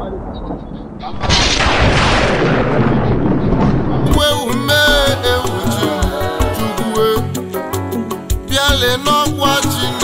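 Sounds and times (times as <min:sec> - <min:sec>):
thunderclap crash and rumble: 0:00.0 - 0:04.4.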